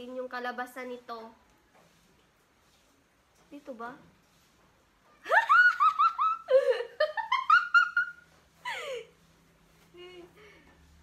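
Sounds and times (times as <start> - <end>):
woman giggling: 5.2 - 9.2.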